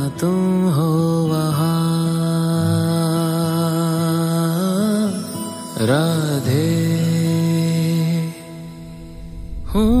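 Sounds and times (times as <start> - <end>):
devotional song singer: 0.0 - 10.0.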